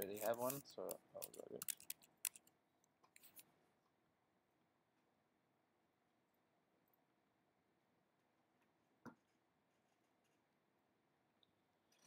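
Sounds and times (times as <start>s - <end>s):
mouse or keyboard clicks: 1.2s - 2.5s.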